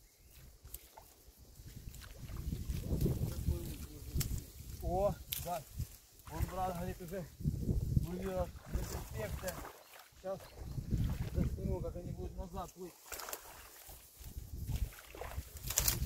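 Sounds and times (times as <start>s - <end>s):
water sloshing and splashing: 0.3s - 4.4s, 6.2s - 7.0s, 8.1s - 11.9s, 12.8s - 16.0s.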